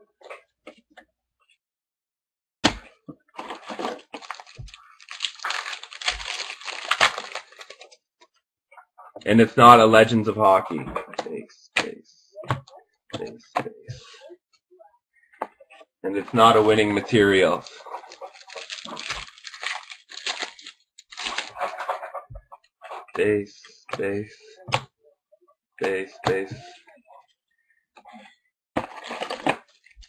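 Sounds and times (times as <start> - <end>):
cards and pack crinkling: 3.4 - 8.0, 16.3 - 21.7, 28.8 - 29.7.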